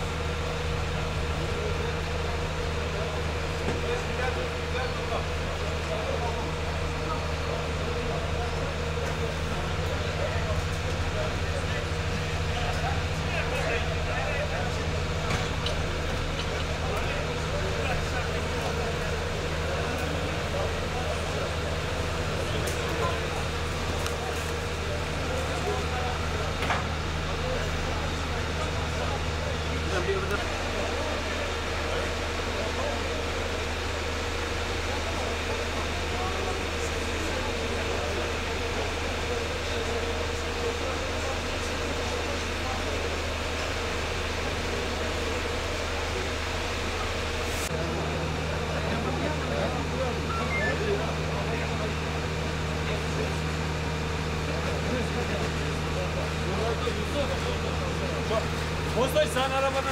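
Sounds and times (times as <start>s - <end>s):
vehicle engine idling: 0.0s - 59.9s.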